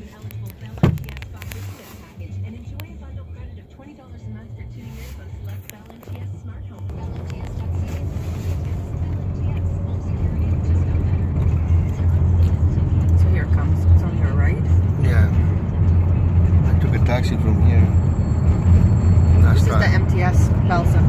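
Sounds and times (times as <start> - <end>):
faint voices: 0.0 - 15.6
car interior rumble: 0.0 - 21.0.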